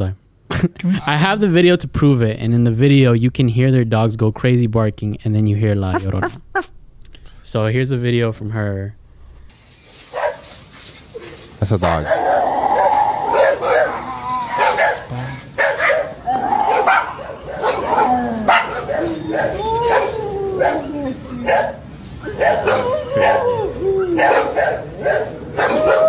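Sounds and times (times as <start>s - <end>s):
dogs barking frantically: 10.0s - 26.0s
gliding wailing cries: 11.1s - 26.0s.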